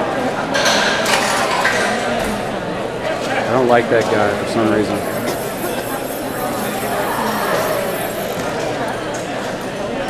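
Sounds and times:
indistinct voices in hall: 0:00.0 - 0:10.0.

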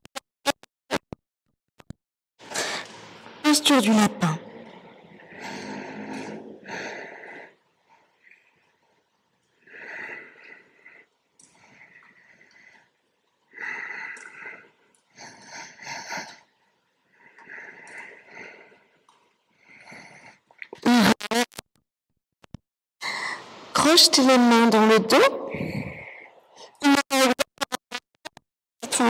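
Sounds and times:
woman breathing slowly: 0:04.9 - 0:20.5, 0:23.0 - 0:23.6, 0:25.5 - 0:26.8.

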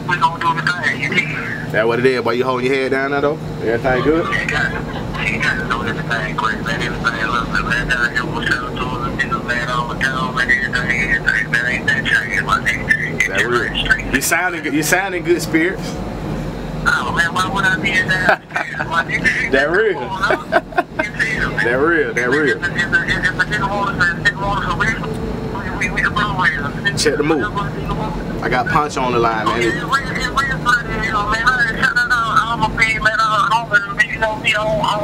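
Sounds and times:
man's voice through phone speaker: 0:00.0 - 0:16.0, 0:16.8 - 0:35.0
steady low hum: 0:00.0 - 0:35.0.

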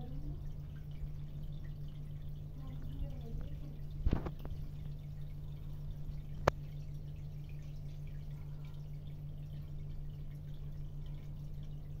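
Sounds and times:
steady low hum: 0:00.0 - 0:12.0
water dripping and trickling: 0:00.0 - 0:12.0.

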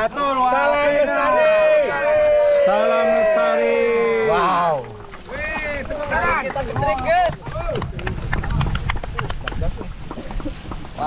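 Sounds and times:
water splashing: 0:00.0 - 0:11.0.

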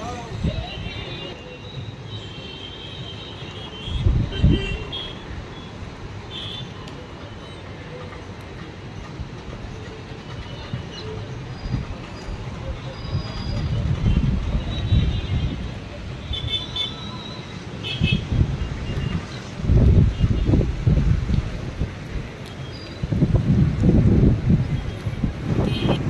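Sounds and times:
wind buffeting microphone: 0:11.7 - 0:15.9, 0:18.1 - 0:26.0.

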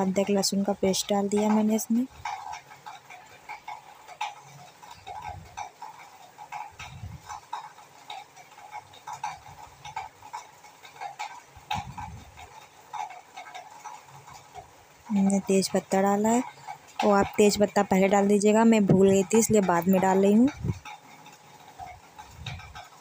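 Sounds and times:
spices crackling in hot oil: 0:00.0 - 0:23.0.

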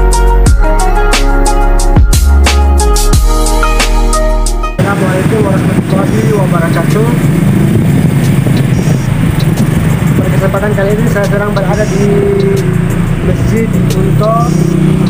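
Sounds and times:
person's voice: 0:04.8 - 0:07.2, 0:10.2 - 0:14.8
low outdoor rumble: 0:04.8 - 0:15.0.

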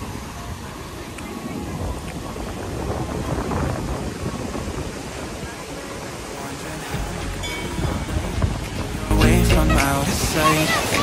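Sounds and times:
breaking surf: 0:00.0 - 0:11.0
wind buffeting microphone: 0:00.0 - 0:11.0.

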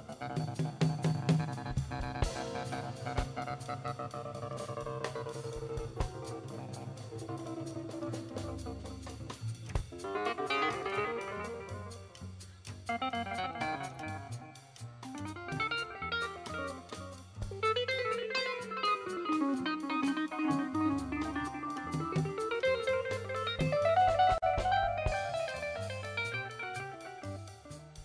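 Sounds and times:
live jazz combo: 0:00.0 - 0:28.0
plucked melodic bass line: 0:12.9 - 0:27.5.

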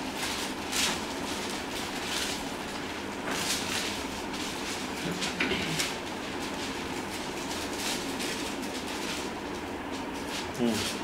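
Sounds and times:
room background noise: 0:00.0 - 0:11.0.

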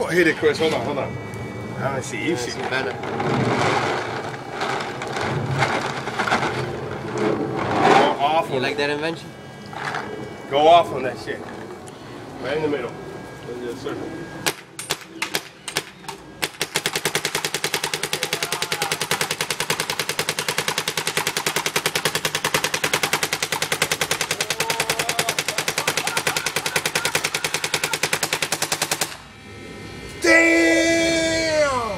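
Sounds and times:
paintball marker firing: 0:14.5 - 0:29.2.

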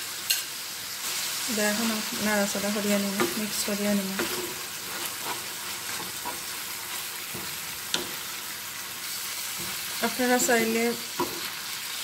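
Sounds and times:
meat sizzling in a frying pan: 0:00.0 - 0:12.0
spatula scraping a pan: 0:03.1 - 0:08.4.

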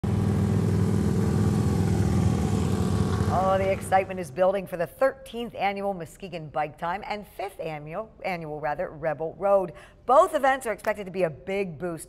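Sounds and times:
more motorcycles: 0:00.0 - 0:04.1
motorcycle engine riding past: 0:00.0 - 0:04.4.

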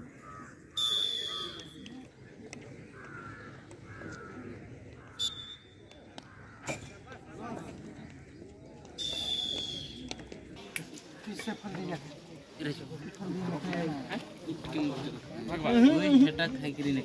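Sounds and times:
cawing calls: 0:00.0 - 0:01.7, 0:02.9 - 0:05.6, 0:06.2 - 0:06.7
crowd chatter: 0:00.0 - 0:17.0
referee's whistle: 0:00.8 - 0:01.8, 0:05.2 - 0:05.8, 0:09.0 - 0:10.1.

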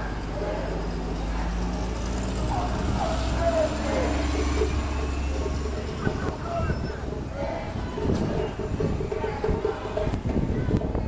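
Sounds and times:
bus engine rumbling: 0:00.0 - 0:11.0
street voices: 0:00.0 - 0:11.0.

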